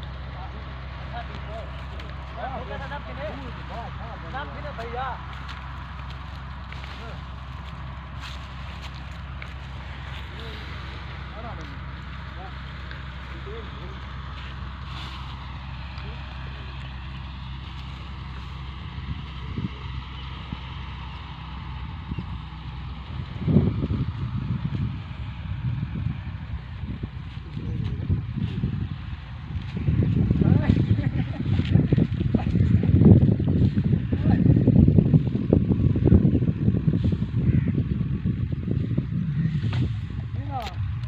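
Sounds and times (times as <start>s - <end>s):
tractor diesel engine idling: 0.0s - 41.0s.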